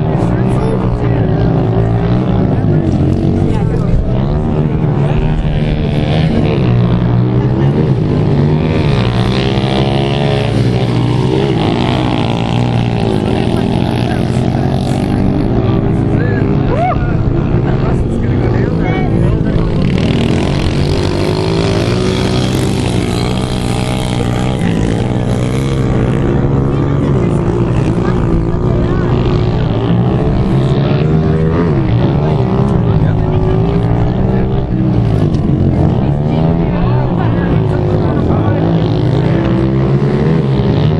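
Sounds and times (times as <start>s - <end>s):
pit bike engines revving: 0.0s - 40.9s.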